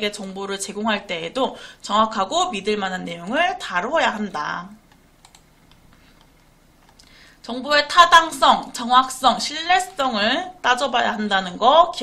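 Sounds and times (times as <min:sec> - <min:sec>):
computer clicks and taps: 0:04.8 - 0:07.1.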